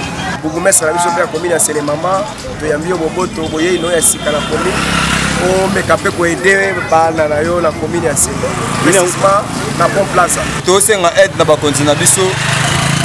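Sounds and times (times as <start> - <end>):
man talking: 0.2 - 12.4
low drone of vehicle engines: 4.2 - 13.0.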